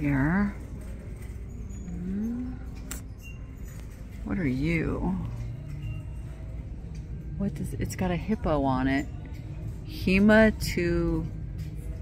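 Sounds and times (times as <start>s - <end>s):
woman humming: 1.9s - 3.0s.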